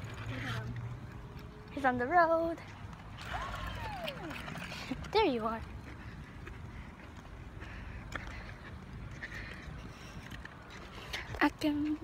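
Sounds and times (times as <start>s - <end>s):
faint footsteps: 0.0s - 12.0s.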